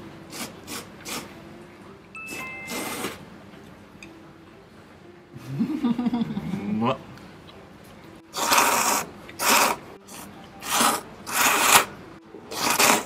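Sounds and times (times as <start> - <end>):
noodles being slurped: 0.3 - 1.4, 2.7 - 3.2, 8.3 - 13.0.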